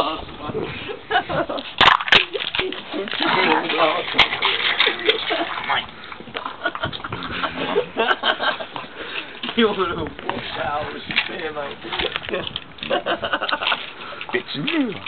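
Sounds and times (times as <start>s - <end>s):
people talking: 2.6s - 5.5s, 9.5s - 12.6s, 14.3s - 15.0s.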